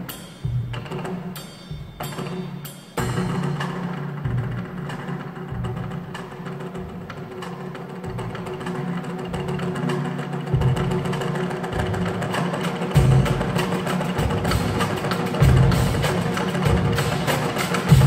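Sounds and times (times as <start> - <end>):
percussion ensemble playing: 0.0 - 18.0
deep drum hits: 10.5 - 12.2, 12.8 - 18.0.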